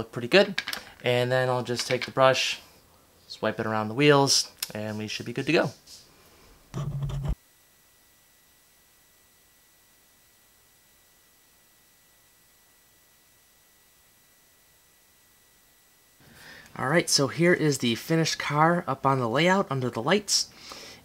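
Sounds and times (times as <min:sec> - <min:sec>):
faint high electronic whine: 0:00.0 - 0:21.0
short pitched hum: 0:06.7 - 0:07.4.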